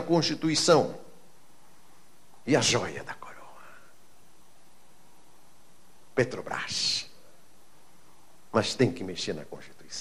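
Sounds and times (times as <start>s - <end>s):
man speaking into microphone: 0.0s - 1.1s, 2.4s - 3.9s, 6.1s - 7.2s, 8.5s - 10.0s.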